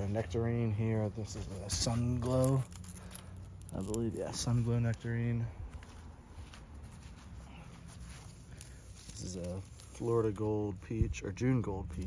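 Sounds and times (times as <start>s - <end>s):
footsteps on grass: 0.0s - 2.7s, 3.8s - 10.7s.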